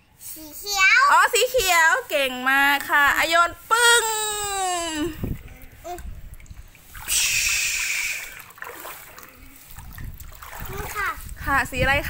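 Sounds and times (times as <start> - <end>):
water splashing in paddling pool: 4.5 - 12.0.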